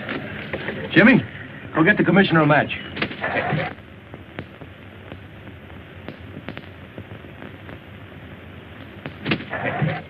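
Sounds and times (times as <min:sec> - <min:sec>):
film soundtrack hiss: 0:00.0 - 0:10.0
faint clicks: 0:04.1 - 0:07.8.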